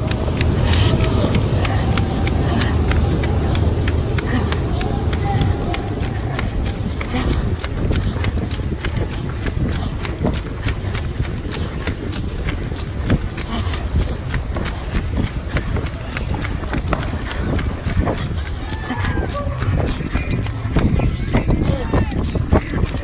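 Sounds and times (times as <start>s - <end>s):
running footsteps: 0.0s - 23.0s
voices: 0.0s - 23.0s
wind rumble on microphone: 0.0s - 23.0s.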